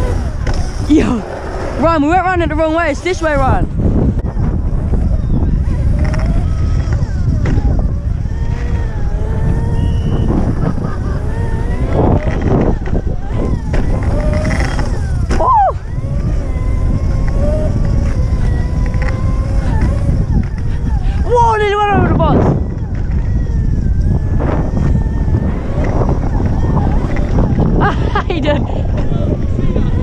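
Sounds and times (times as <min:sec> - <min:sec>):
electric motor whining: 0:00.0 - 0:30.0
rumble of wind and tyres: 0:00.0 - 0:30.0.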